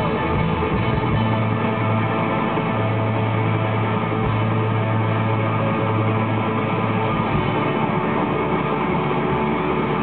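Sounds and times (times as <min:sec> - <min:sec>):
drums: 0:00.0 - 0:10.0
electric guitars: 0:00.0 - 0:10.0
low sustained note: 0:00.0 - 0:10.0.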